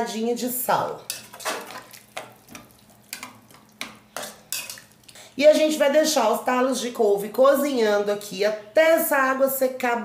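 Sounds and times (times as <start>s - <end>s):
spoon scraping metal pot: 1.0s - 5.0s
water sloshing in a pot: 1.0s - 5.3s.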